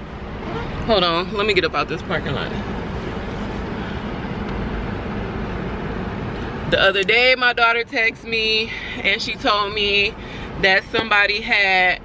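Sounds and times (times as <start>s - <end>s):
car cabin hum and hiss: 0.0s - 12.0s.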